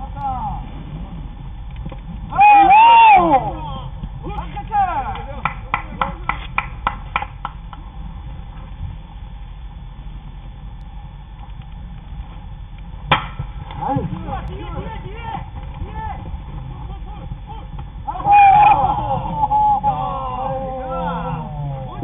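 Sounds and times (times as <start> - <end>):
distant shouts: 2.2 - 6.3, 13.8 - 22.0
sharp claps: 5.0 - 7.8
bat hitting ball: 13.1 - 13.5.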